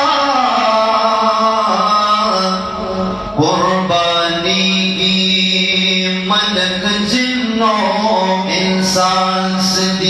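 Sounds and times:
man singing into microphone: 0.0s - 10.0s.

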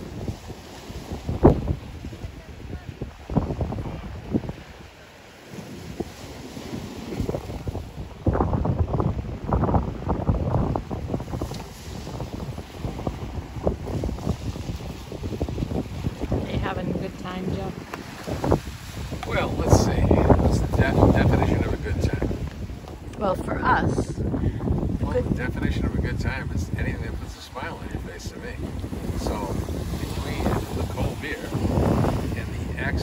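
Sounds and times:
waves washing onto rocky shore: 0.0s - 33.0s
wind buffeting microphone: 0.0s - 33.0s.

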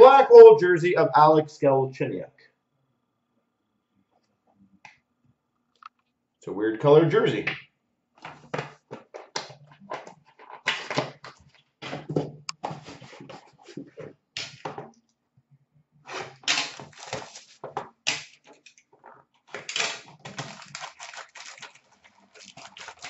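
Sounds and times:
card packaging rustling: 12.6s - 13.9s, 16.1s - 18.7s, 19.6s - 23.0s.

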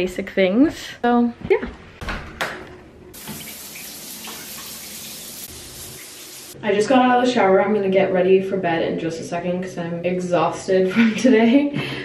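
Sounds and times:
shower spraying water: 3.2s - 6.6s.

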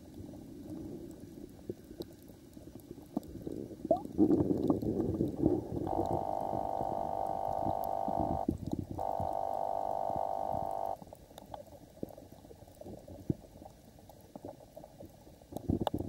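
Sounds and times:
faint clicks and crackles: 0.0s - 16.0s
steady underwater hum: 0.0s - 16.0s.

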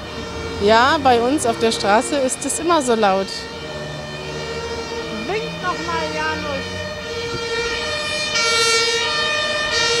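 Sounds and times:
two-tone siren: 0.0s - 10.0s.

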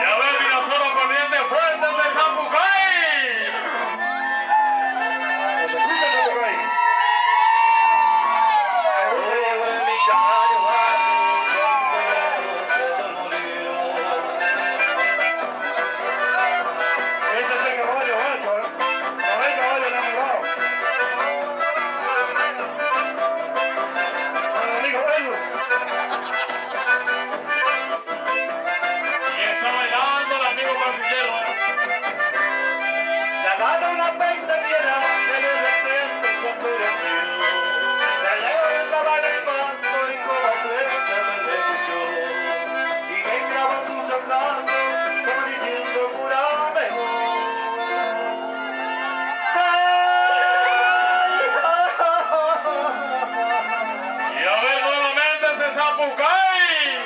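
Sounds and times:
button accordion melody: 0.0s - 6.8s, 10.6s - 57.0s
strummed acoustic guitars: 11.0s - 56.4s.

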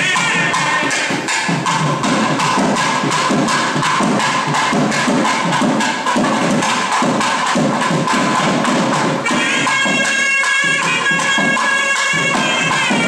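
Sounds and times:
drumming with stick and hand: 0.0s - 13.0s.

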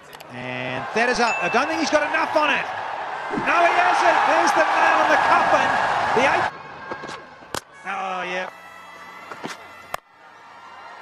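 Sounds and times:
faint stadium background: 0.0s - 11.0s.

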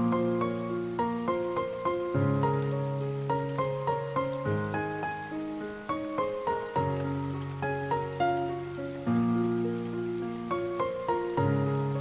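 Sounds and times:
slow gentle piano melody: 0.0s - 12.0s
steady rain: 0.0s - 12.0s.

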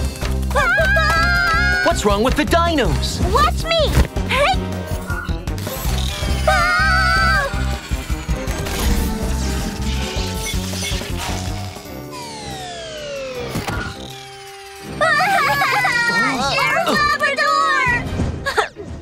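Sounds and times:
dramatic background music: 0.0s - 19.0s
shrill cries: 0.6s - 2.0s, 6.3s - 8.1s.

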